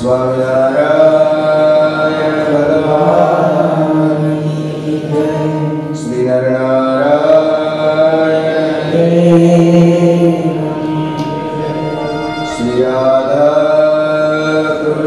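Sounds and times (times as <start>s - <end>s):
man chanting devotional verses: 0.0s - 15.0s.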